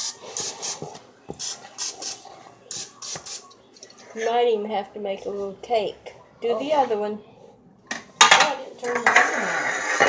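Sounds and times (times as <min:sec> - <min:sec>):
aerosol spray hissing: 0:00.0 - 0:03.4.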